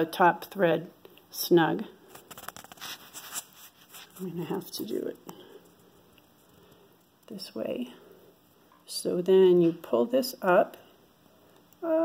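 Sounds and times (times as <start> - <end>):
soft scratchy handling sounds: 2.0 - 7.8.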